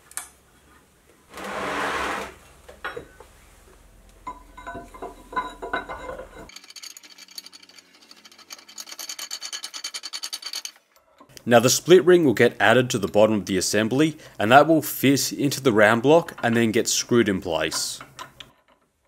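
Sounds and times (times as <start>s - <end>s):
metallic clicks and rattles: 4.6s - 11.3s.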